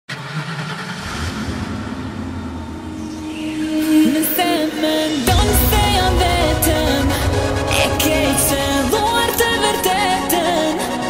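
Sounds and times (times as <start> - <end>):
steady synth tone: 0.1 - 11.0.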